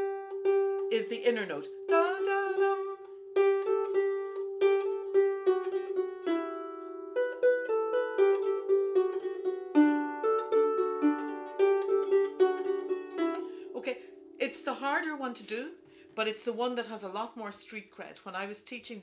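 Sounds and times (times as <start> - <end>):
harp playing jig melody: 0.0 - 16.0.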